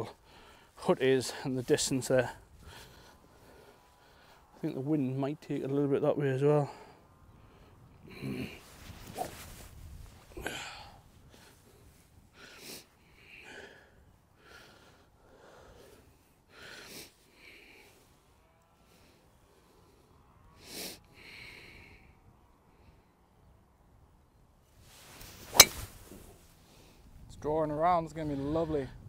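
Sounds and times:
golf club striking ball: 25.4s - 26.3s.

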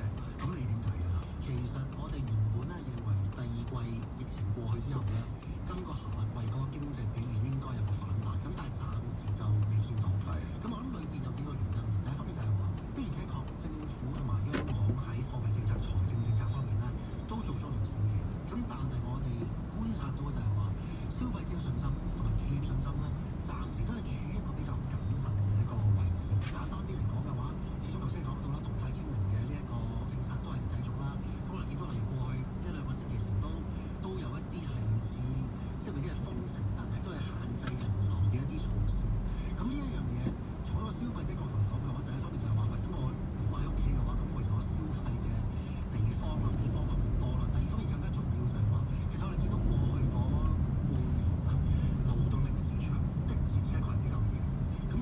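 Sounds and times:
car engine and road hum: 0.0s - 55.0s.

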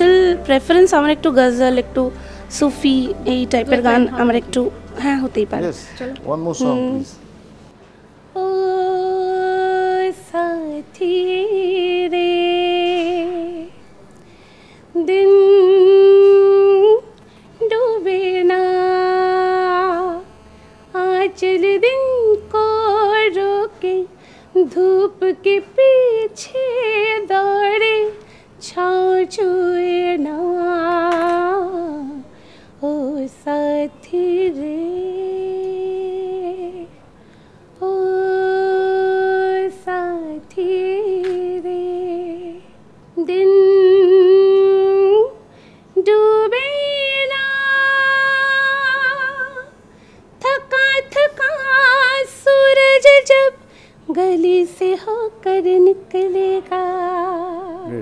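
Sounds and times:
woman singing held note: 0.0s - 7.0s
woman singing unaccompanied: 0.0s - 7.2s, 8.3s - 14.0s, 14.9s - 37.1s, 37.8s - 49.8s, 50.4s - 58.0s.

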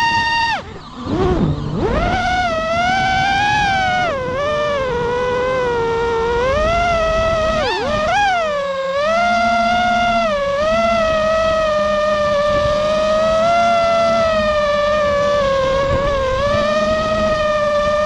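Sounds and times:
drone motors whining: 0.0s - 18.0s.

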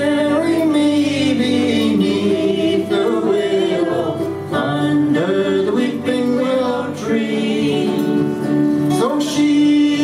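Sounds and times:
lap slide guitar: 0.0s - 10.0s
woman and man singing in harmony: 0.0s - 10.0s.

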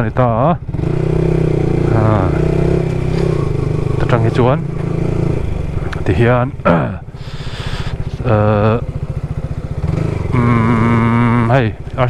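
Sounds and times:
motorcycle engine running: 0.0s - 12.0s
person talking: 1.9s - 2.5s, 3.9s - 4.7s, 5.9s - 7.0s, 8.2s - 8.8s, 10.3s - 12.0s.

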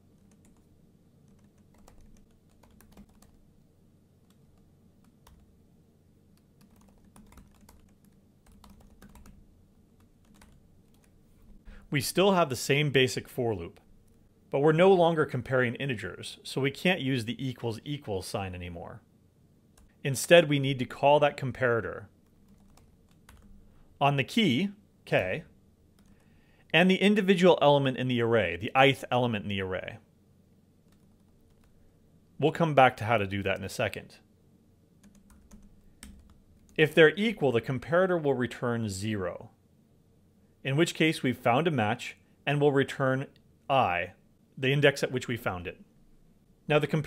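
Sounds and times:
low steady hum: 0.0s - 47.0s
typing on computer keyboard: 1.3s - 3.4s, 6.4s - 9.4s, 10.2s - 11.1s, 22.4s - 23.6s, 35.0s - 36.7s.

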